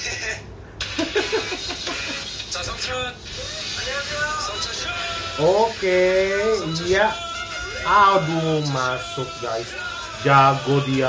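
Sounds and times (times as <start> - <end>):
light background music: 0.8 - 11.0.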